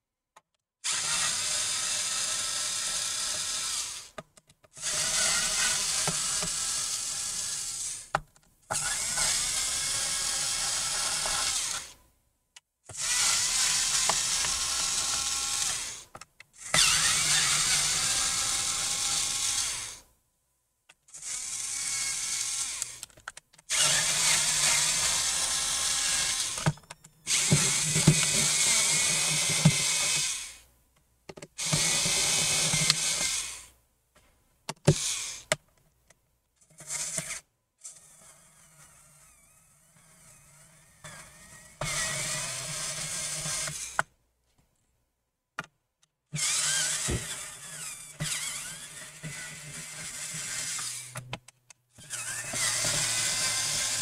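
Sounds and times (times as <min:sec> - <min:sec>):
electric screwdriver motor whirring: 0:00.8 - 0:04.1, 0:04.8 - 0:12.0, 0:12.9 - 0:20.0, 0:21.1 - 0:23.1, 0:23.7 - 0:30.6, 0:31.6 - 0:33.7, 0:34.9 - 0:35.5, 0:36.8 - 0:44.1, 0:46.4 - 0:51.2, 0:52.0 - 0:54.0
sharp clicks: 0:22.8 - 0:23.7.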